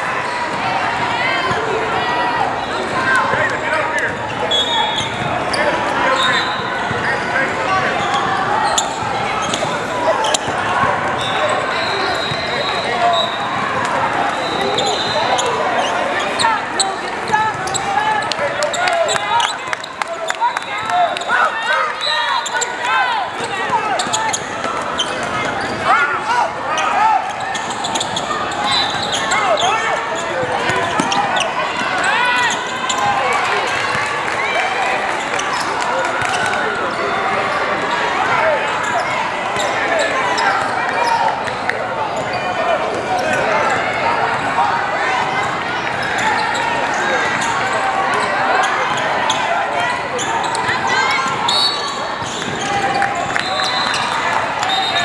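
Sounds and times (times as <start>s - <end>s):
voices calling and chattering: 0.0s - 55.0s.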